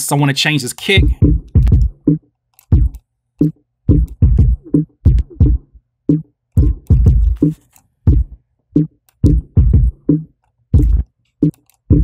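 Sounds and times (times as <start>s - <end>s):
kick drum thumps: 1.0s - 3.0s, 3.9s - 7.5s, 8.1s - 10.2s, 10.8s - 11.0s.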